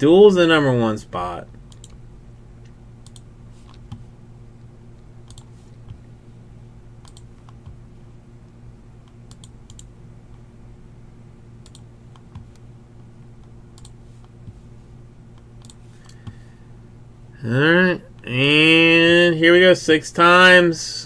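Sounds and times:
steady low hum: 0.0 - 21.0
computer keyboard clicks: 7.0 - 7.7, 9.3 - 9.9.

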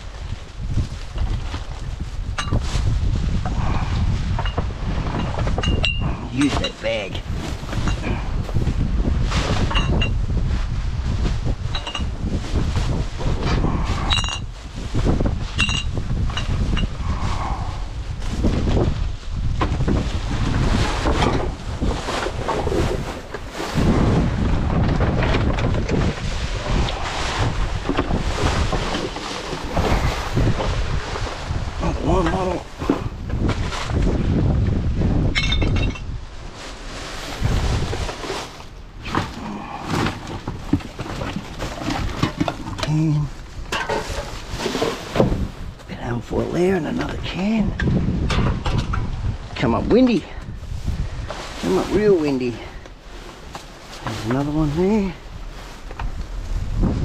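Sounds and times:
wind on microphone: 0.0 - 57.0.

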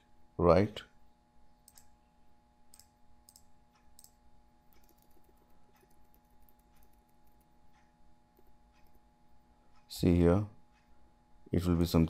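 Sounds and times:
low steady hum: 0.0 - 12.0
computer mouse clicks: 1.6 - 1.9, 2.7 - 9.0.

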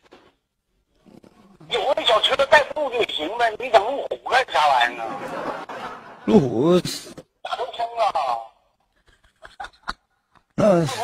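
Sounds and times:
person talking: 1.6 - 5.3.

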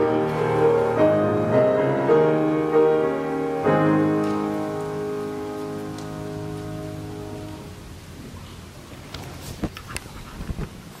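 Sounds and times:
choir with piano chord: 0.0 - 7.7.

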